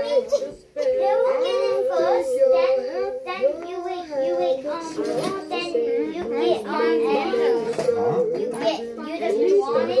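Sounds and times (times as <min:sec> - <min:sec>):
young children chattering: 0:00.0 - 0:10.0.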